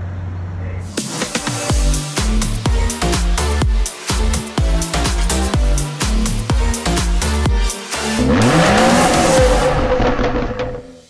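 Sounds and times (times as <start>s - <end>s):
electronic dance music: 0.9s - 11.0s
car engine revving: 7.9s - 11.0s
rushing whoosh: 8.2s - 11.0s.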